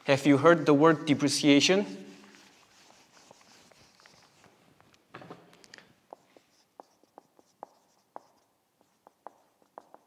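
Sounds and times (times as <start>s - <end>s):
marker writing on whiteboard: 1.4s - 4.4s, 6.0s - 10.0s.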